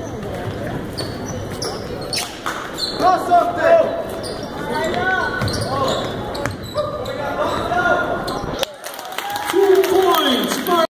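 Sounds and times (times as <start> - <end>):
spectators' voices echoing: 0.0 - 10.9
basketball bouncing: 5.3 - 6.8.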